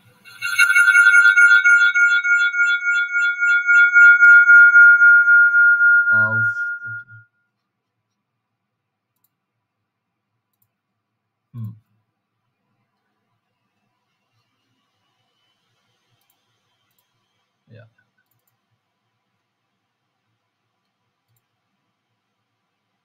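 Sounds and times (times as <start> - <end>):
high-pitched pulsing electronic tone: 0.0 - 7.2
short low sound: 0.3 - 7.2.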